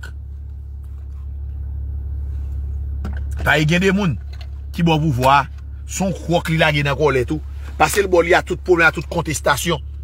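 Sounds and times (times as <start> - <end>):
low rumble inside car cabin: 0.0 - 10.0.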